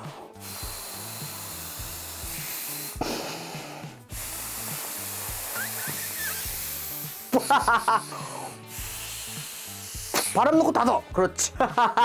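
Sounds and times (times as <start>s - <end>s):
person blowing into tube: 0.0s - 10.4s
background music with bass: 0.0s - 12.0s.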